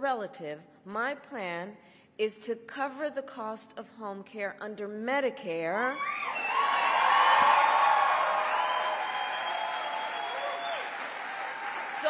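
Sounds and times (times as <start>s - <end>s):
individual whoops: 6.0s - 12.0s
crowd cheering and applauding: 6.2s - 12.0s.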